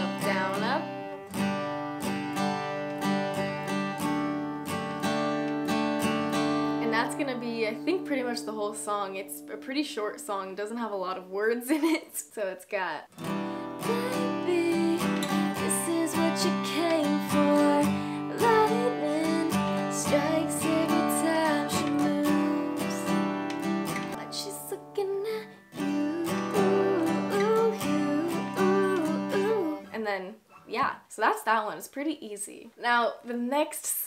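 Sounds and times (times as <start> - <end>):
acoustic guitar strumming: 0.0 - 10.4, 13.1 - 30.0
woman singing: 13.8 - 23.3, 24.2 - 30.2.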